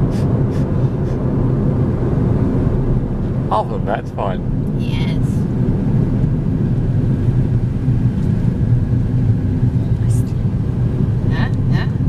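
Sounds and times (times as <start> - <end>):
road and engine noise inside car: 0.0 - 12.0.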